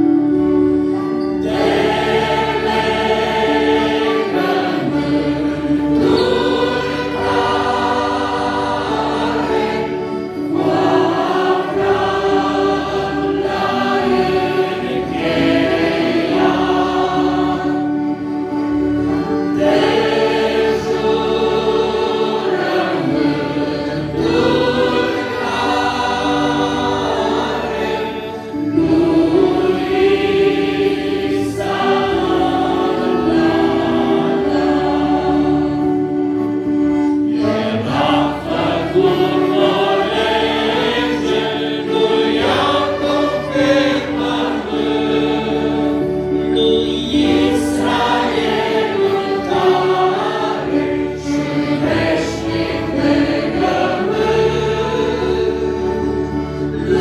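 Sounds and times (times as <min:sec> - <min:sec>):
accordion: 0:00.0 - 0:57.0
congregation singing a hymn: 0:00.0 - 0:57.0
electric keyboard: 0:00.0 - 0:57.0.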